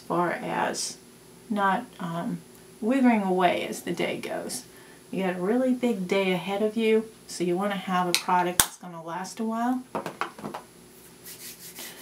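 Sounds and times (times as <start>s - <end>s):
faint rubbing: 10.9s - 12.0s.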